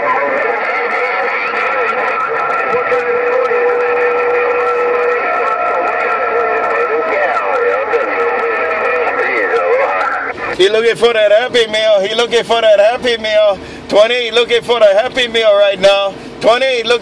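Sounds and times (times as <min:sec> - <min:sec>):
radio whistles: 0:00.0 - 0:10.6
garbled overlapping radio voices: 0:00.0 - 0:17.0.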